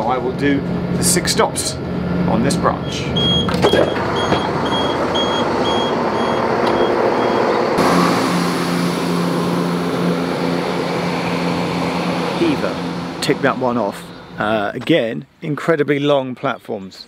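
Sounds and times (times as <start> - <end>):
train diesel engines droning: 0.0 - 14.8
door-warning beeps: 2.8 - 7.6.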